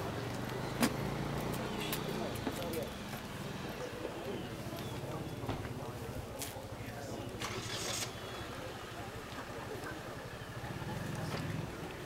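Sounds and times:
engine hum: 0:07.2 - 0:12.0.

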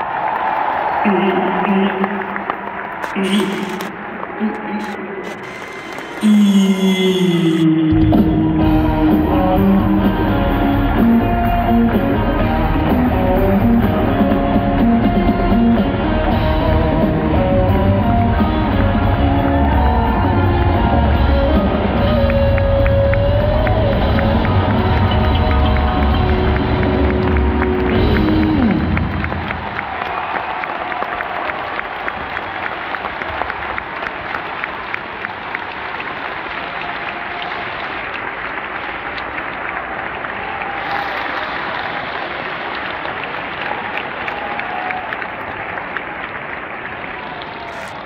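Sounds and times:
audience applauding: 0:00.0 - 0:06.6, 0:08.7 - 0:48.0
live band playing: 0:05.3 - 0:29.8.

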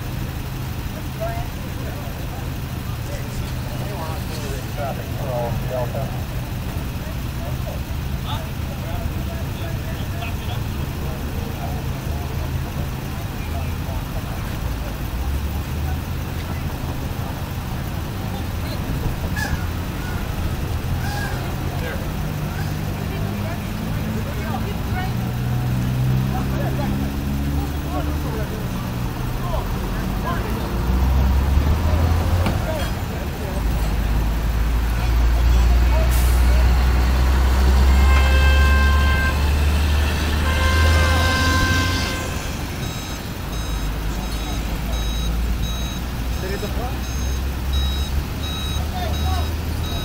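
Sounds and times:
truck engine running: 0:00.0 - 0:50.0
reversing alarm beeping: 0:40.7 - 0:50.0.

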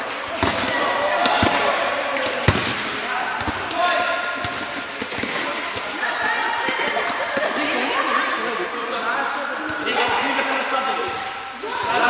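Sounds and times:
ball kicked and bouncing: 0:00.3 - 0:03.8, 0:04.4 - 0:07.6.

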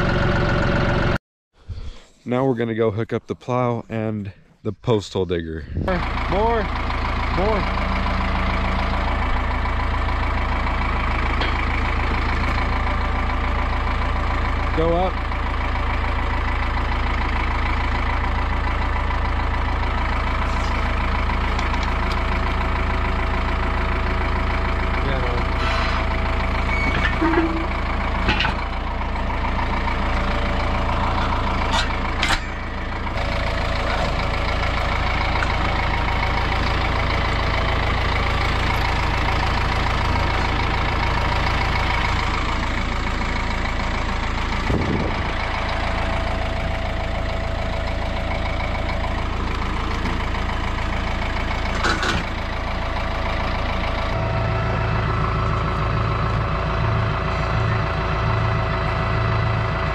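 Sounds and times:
diesel engine idling: 0:00.0 - 0:59.9.

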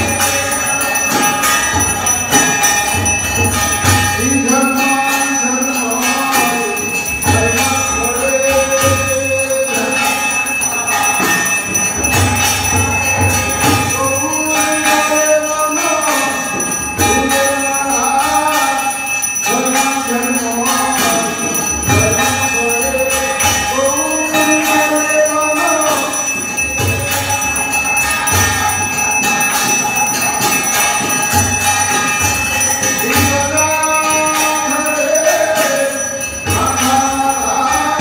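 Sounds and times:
bells ringing: 0:00.0 - 0:38.0.

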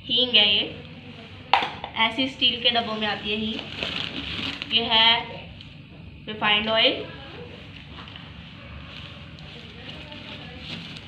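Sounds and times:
plastic bag rustling: 0:02.5 - 0:05.1, 0:07.2 - 0:11.0.

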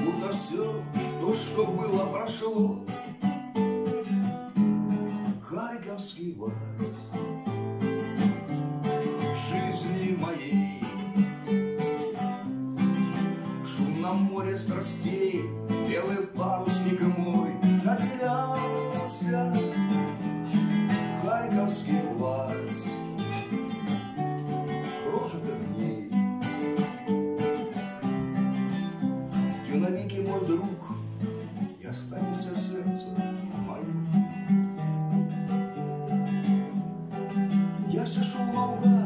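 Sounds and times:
acoustic guitar waltz: 0:00.0 - 0:39.0.

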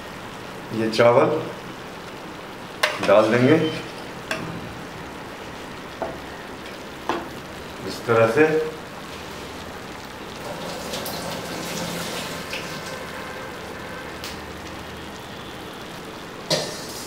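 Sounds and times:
food sizzling in a pan: 0:00.0 - 0:17.0.

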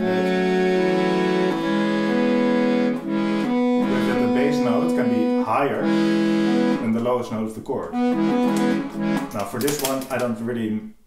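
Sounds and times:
accordion bass notes and chords: 0:00.0 - 0:10.9.

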